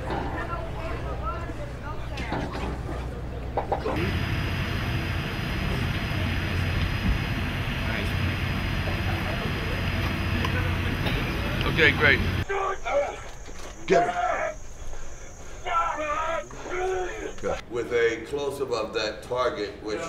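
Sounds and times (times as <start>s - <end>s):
indistinct voices talking: 0.0s - 17.7s
low hum: 2.6s - 12.4s.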